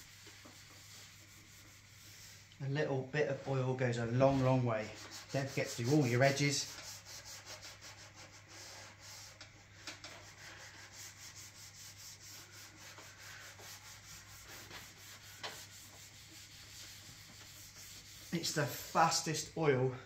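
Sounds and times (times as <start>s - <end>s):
cloth pad scrubbing wood: 0.0s - 2.5s, 4.2s - 9.4s, 10.1s - 19.3s.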